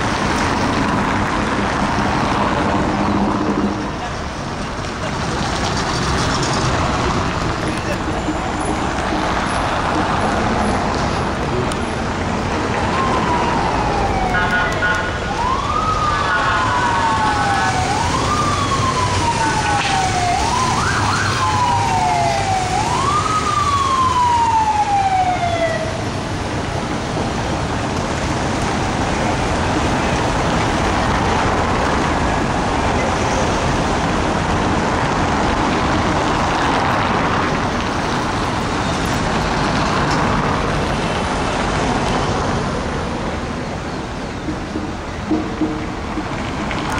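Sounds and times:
street traffic: 0:00.0 - 0:46.9
police siren wailing: 0:07.2 - 0:39.1.

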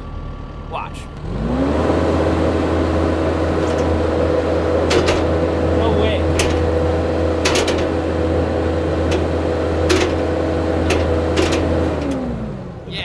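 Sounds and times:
hydraulic whine: 0:00.0 - 0:12.9
track loader engine high revs: 0:00.0 - 0:12.9
sharp metal clanks: 0:03.5 - 0:12.2.

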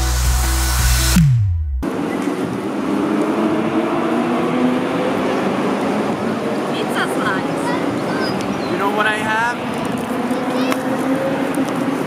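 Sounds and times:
beach ambience: 0:01.8 - 0:12.0.

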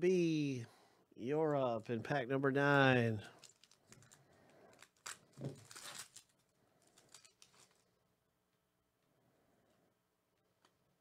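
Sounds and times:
foil wrapper tearing and crackling: 0:03.4 - 0:07.8.

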